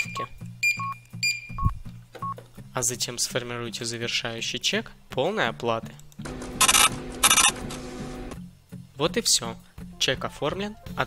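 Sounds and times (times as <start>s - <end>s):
receipt printer printing: 6.3s - 8.4s.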